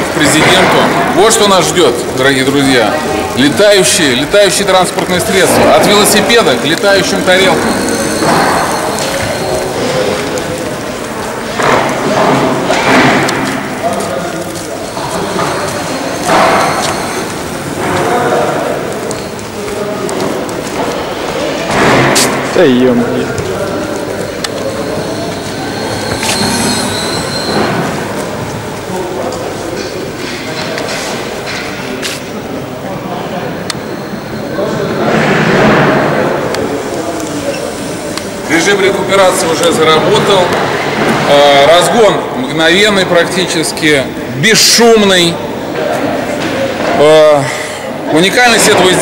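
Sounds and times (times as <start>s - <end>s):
indistinct voices: 0.0s - 49.0s
room noise echoing in hall: 0.0s - 49.0s.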